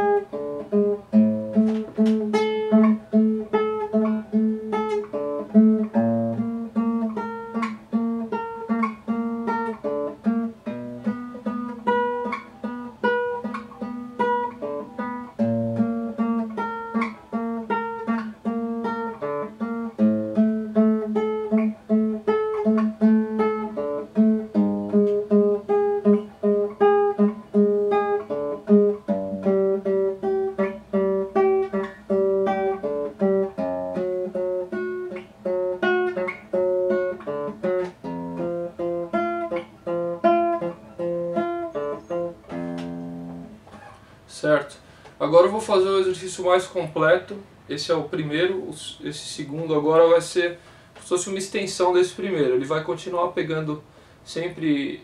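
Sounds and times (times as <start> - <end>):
classical guitar plucked notes: 0.0 - 44.1.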